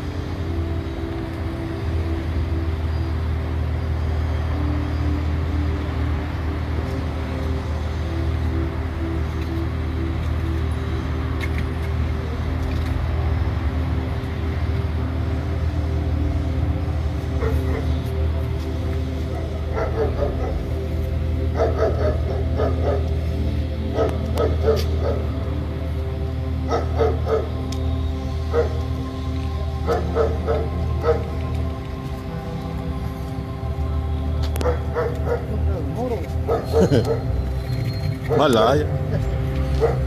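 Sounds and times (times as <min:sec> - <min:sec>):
low droning background music: 0:00.0 - 0:40.0
dog barking: 0:19.7 - 0:20.6, 0:21.6 - 0:23.1, 0:24.0 - 0:25.3, 0:26.7 - 0:27.5, 0:28.5 - 0:28.8, 0:29.9 - 0:31.3, 0:34.6 - 0:35.5, 0:36.5 - 0:37.3, 0:39.8 - 0:40.0.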